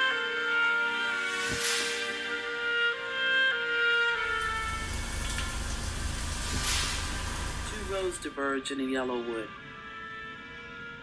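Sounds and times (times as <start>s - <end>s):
soft orchestral music: 0.0s - 11.0s
low rumble with hiss: 4.2s - 8.4s.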